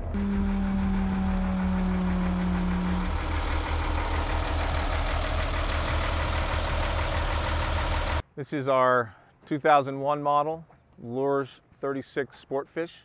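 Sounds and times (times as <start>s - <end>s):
diesel engines idling: 0.0s - 8.2s
hydraulic pump humming: 0.0s - 8.2s.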